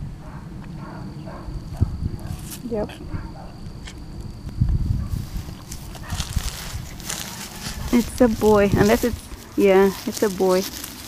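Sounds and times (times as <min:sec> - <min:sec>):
low rumble on microphone: 0:00.0 - 0:09.6
soft faint animal movement: 0:05.1 - 0:11.0.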